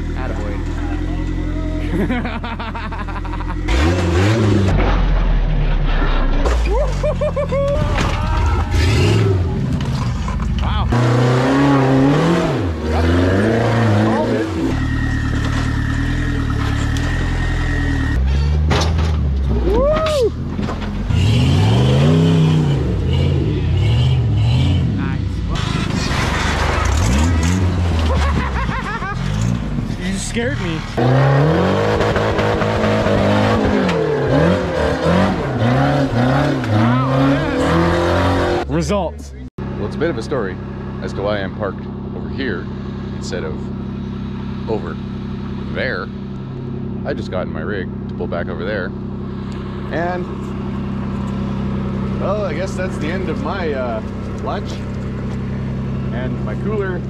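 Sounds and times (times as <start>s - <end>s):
buggy engines revving hard: 0.0s - 57.0s.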